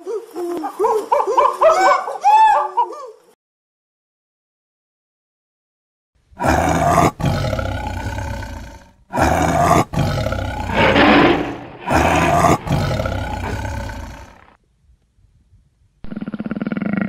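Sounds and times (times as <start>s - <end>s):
big cat roaring: 6.4s - 14.5s.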